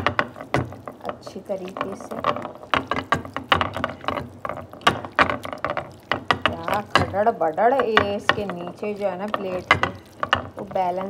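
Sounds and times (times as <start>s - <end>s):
plate rattling and knocking: 0.0s - 11.0s.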